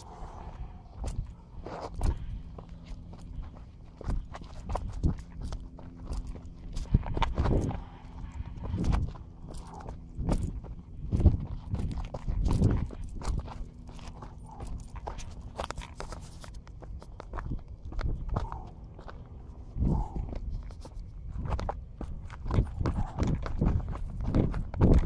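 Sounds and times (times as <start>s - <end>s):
footsteps on sandy dirt: 0.0s - 25.0s.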